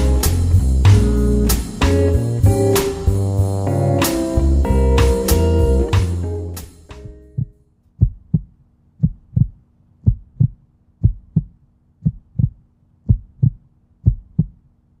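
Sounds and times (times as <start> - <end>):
music: 0.0 - 7.6
heartbeat thumps: 7.2 - 14.6.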